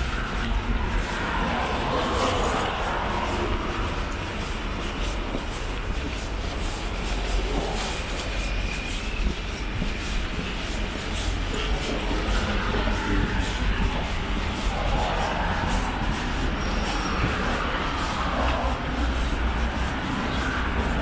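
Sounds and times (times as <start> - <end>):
passing vehicles rumbling: 0.0 - 8.1, 10.8 - 21.0.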